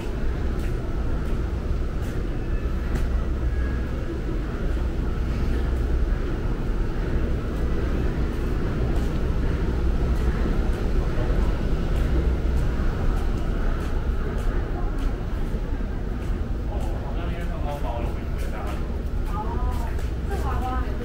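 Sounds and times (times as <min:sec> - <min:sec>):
low rumbling background noise: 0:00.0 - 0:21.0.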